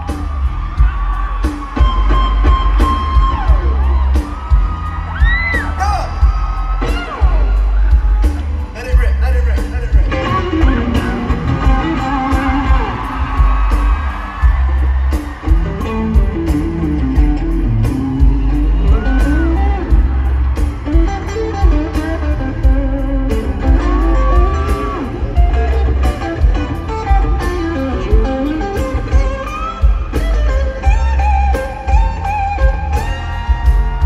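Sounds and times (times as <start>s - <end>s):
heavy bass: 0.0s - 34.0s
steady drum beat: 0.0s - 34.0s
electric guitar lead melody: 9.6s - 13.8s, 15.4s - 34.0s.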